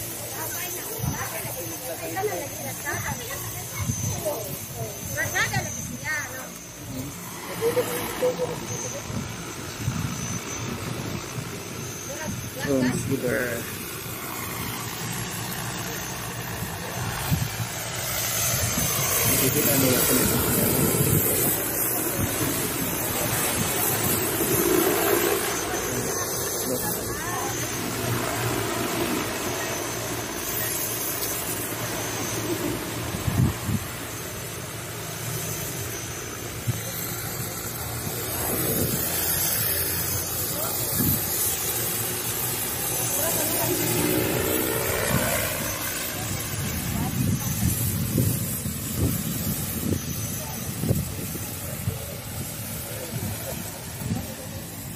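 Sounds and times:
drone propellers humming: 0.0s - 54.9s.

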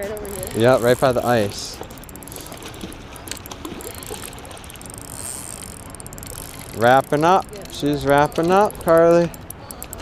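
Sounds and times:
fishing reel clicking: 0.0s - 10.0s.

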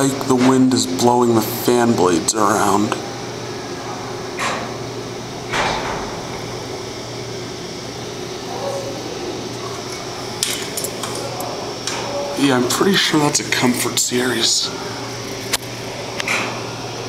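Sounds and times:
air conditioner unit humming: 0.0s - 17.0s.

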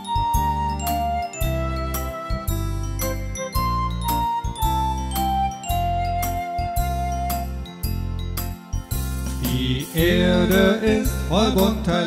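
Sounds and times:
bass line: 0.0s - 12.0s
keyboard melody: 0.0s - 12.0s.

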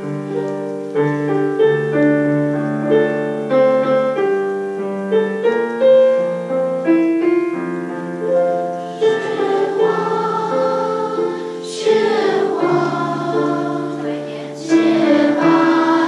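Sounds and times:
piano melody: 0.0s - 16.0s
children singing: 8.8s - 16.0s.

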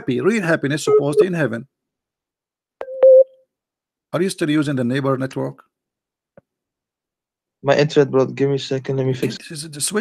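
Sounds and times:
electronic beep tone: 0.9s - 1.3s, 2.8s - 3.4s.

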